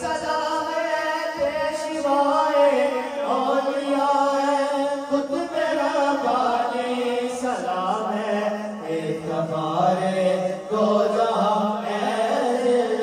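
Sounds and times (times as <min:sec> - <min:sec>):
men chanting into microphones: 0:00.0 - 0:13.0.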